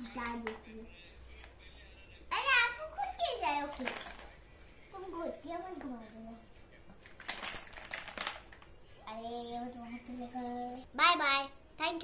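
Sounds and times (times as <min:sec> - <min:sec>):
wooden pucks clattering: 0:03.7 - 0:04.4, 0:07.0 - 0:08.7.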